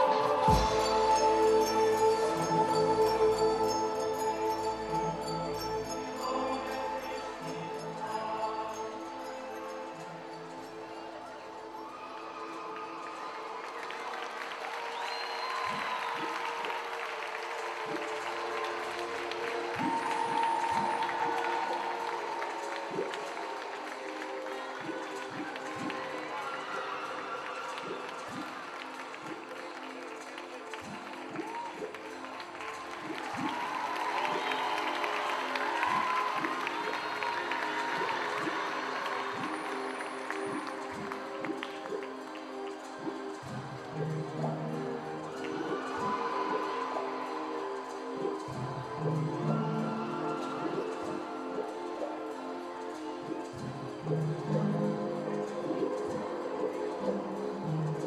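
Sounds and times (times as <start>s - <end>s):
accompaniment music: 0.0s - 11.8s
music with long held notes: 0.0s - 58.0s
audience applause: 12.2s - 42.8s.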